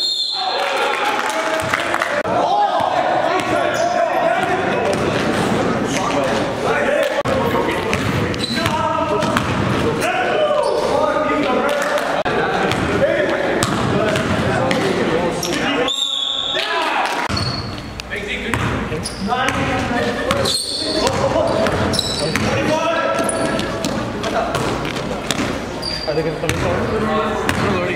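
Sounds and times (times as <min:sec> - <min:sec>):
players' voices echoing: 0:00.0 - 0:27.9
basketball bouncing on gym floor: 0:04.4 - 0:05.4, 0:07.9 - 0:09.7
high squeak: 0:20.4 - 0:21.0, 0:25.8 - 0:26.3.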